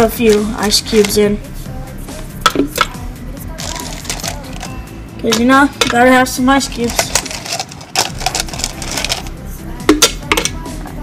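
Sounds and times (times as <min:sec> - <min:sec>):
background music: 0:00.0 - 0:11.0
ice cubes clinking in blender jar: 0:06.9 - 0:09.3.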